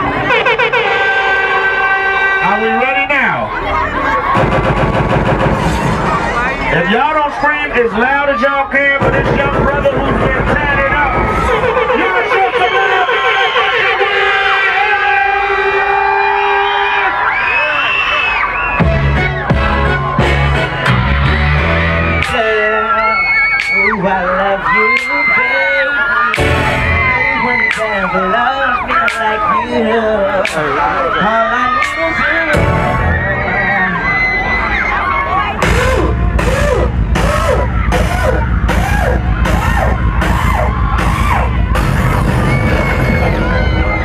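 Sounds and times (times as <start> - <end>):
music with heavy bass beat: 0.0 - 2.5, 3.9 - 6.8, 8.9 - 15.8, 18.8 - 25.6, 26.3 - 34.0, 35.5 - 44.0
crowd screaming and cheering: 0.0 - 44.0
loud horn-like tone: 0.2 - 2.9, 11.5 - 17.0.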